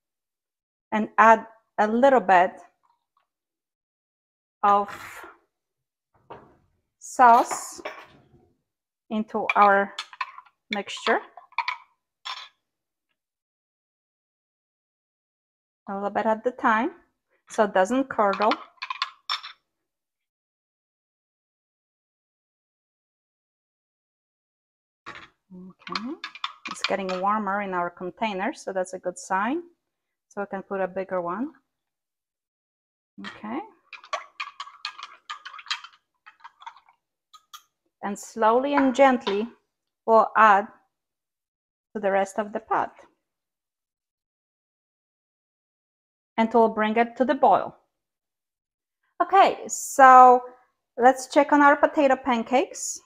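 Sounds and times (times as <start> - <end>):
ladle scraping container: 25.8 - 27.4, 33.3 - 37.6.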